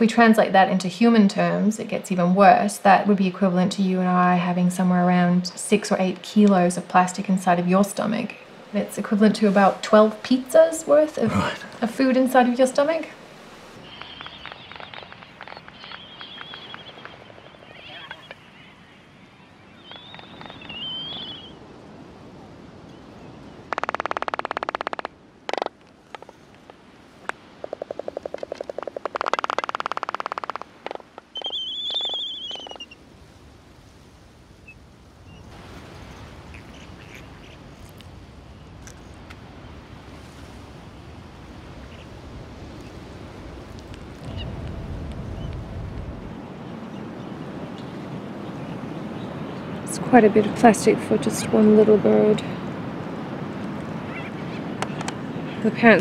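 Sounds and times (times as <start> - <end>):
albatrosses rattling calls: 13.8 - 18.5, 23.6 - 33.0, 36.5 - 37.6
high wavering bird calls: 13.8 - 21.6, 23.0 - 26.4, 27.6 - 33.0, 36.4 - 37.6, 54.0 - 56.0.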